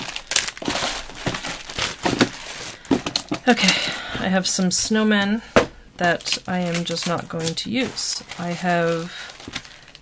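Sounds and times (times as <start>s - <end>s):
plastic bags crinkling: 0.0s - 10.0s.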